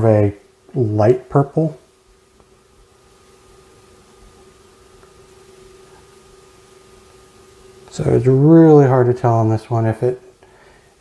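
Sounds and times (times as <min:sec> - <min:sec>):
faint steady hum: 0:00.0 - 0:11.0
light hiss: 0:00.0 - 0:11.0.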